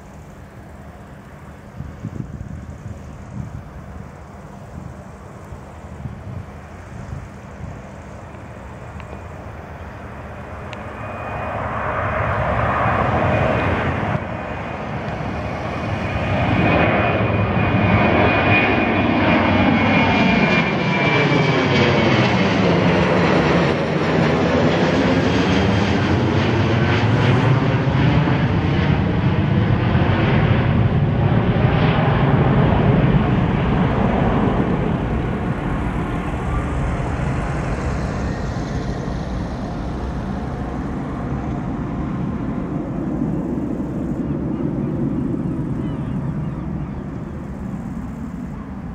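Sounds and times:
high engine whine: 0.0s - 48.9s
jet airliner flying overhead: 0.0s - 48.9s.

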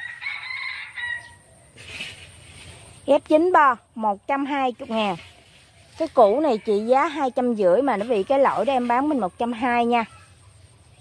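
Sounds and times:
rooster crowing: 0.0s - 1.5s.

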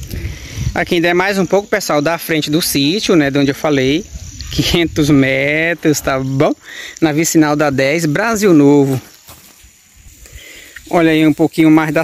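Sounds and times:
outdoor background hiss: 0.0s - 12.0s
man speaking: 0.8s - 9.1s, 10.8s - 12.0s.

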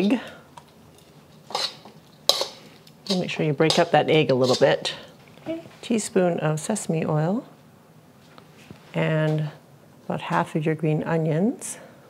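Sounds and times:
metal tongs scraping a wok: 1.0s - 5.1s.

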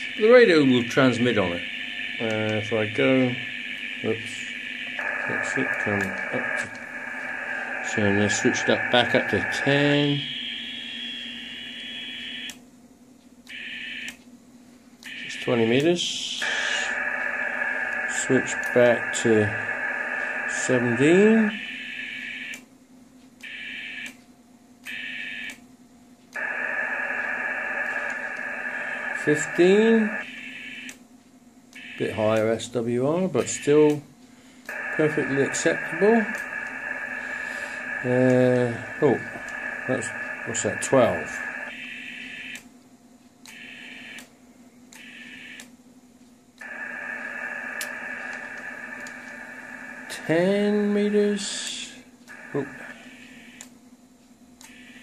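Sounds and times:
radio receiver hiss: 0.0s - 12.5s, 15.1s - 21.6s, 26.4s - 30.4s, 34.7s - 41.8s, 46.6s - 53.6s
faint steady hum: 0.0s - 55.0s
clicks: 5.0s - 9.6s, 34.6s - 37.2s, 46.6s - 50.0s.

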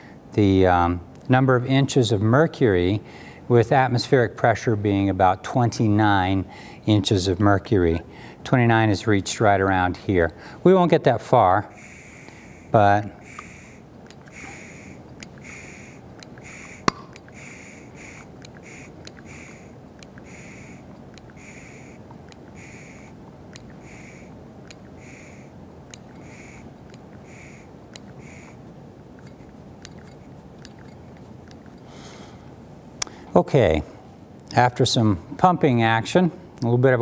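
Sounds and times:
hand vacuum pump hissing: 11.7s - 22.0s, 22.6s - 23.2s, 23.8s - 24.3s, 25.0s - 25.5s, 26.2s - 28.6s
sharp click: 15.2s - 17.4s.

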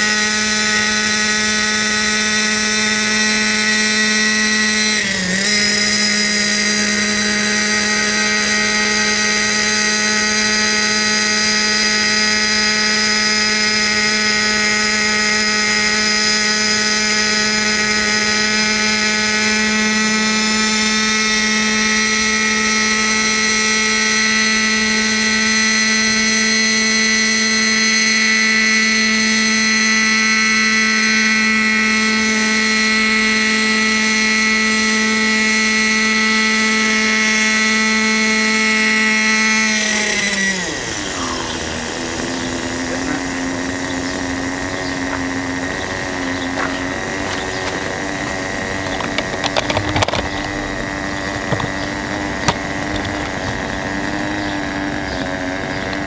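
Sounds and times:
model helicopter engine and rotor: 0.0s - 56.0s.

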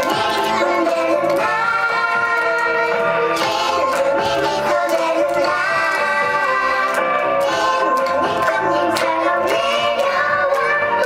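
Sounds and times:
musical accompaniment: 0.0s - 11.0s
young children singing: 0.0s - 11.0s.

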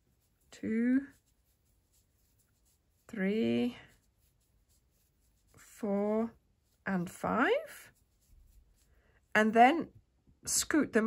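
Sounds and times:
crochet hook scratching yarn: 0.0s - 9.4s.

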